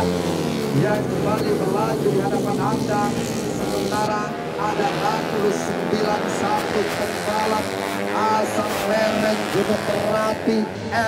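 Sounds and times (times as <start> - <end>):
motorcycles revving hard: 0.0 - 11.0
person speaking: 0.8 - 11.0.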